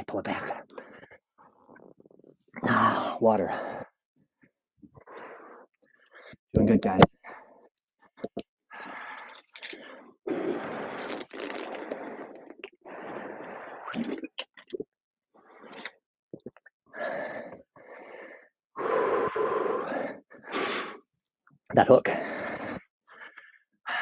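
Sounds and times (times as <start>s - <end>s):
man breathing heavily: 16.9s - 21.0s, 22.2s - 24.0s.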